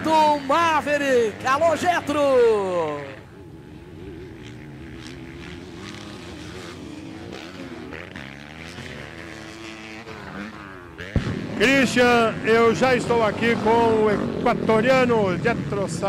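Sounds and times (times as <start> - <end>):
motorcycle engines idling and blipping: 0.0 - 16.0.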